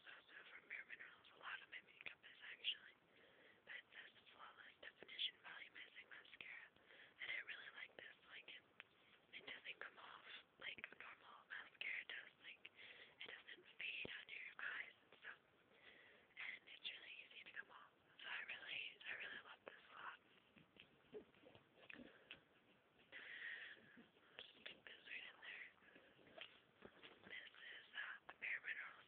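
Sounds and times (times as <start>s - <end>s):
person whispering: 0.0s - 3.0s, 3.7s - 8.7s, 9.3s - 15.4s, 16.3s - 20.2s, 23.1s - 29.0s.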